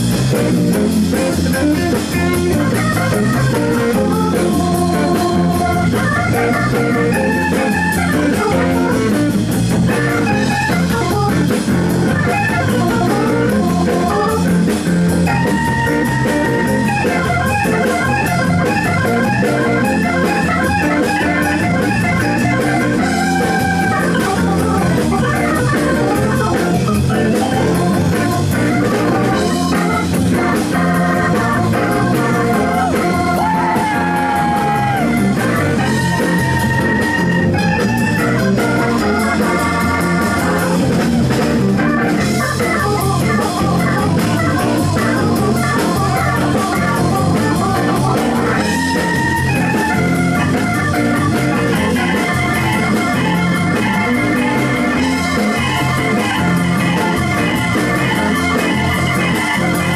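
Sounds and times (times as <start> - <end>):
bass: 0.0 - 59.9
drums: 0.0 - 59.9
organ playing fast solo: 0.0 - 59.9.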